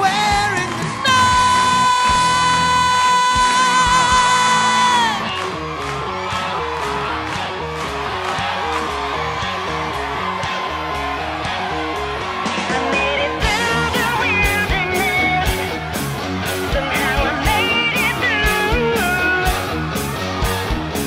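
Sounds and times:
drums: 0:00.0 - 0:21.0
repeating guitar riff: 0:11.0 - 0:21.0.

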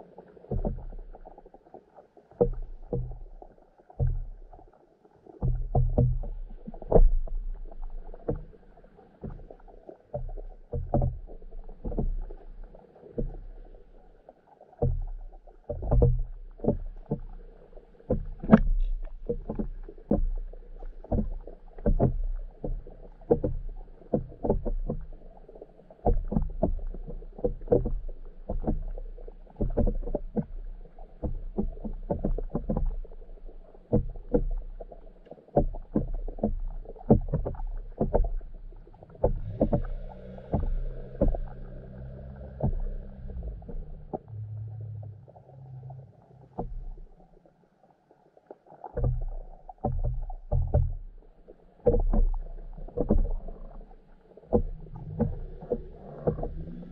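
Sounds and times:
muffled underwater knocks: 0:00.0 - 0:47.5, 0:48.8 - 0:56.9
low rumble of moving water: 0:00.0 - 0:56.9.

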